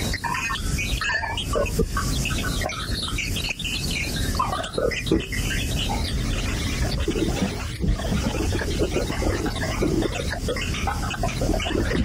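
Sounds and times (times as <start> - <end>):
squeaky chirp-like blips: 0.0 - 7.6.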